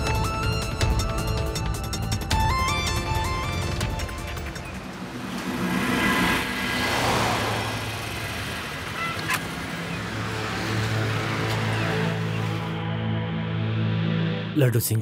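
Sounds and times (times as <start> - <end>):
background music: 0.0 - 6.4, 9.7 - 15.0
motor scooter riding: 3.5 - 12.8.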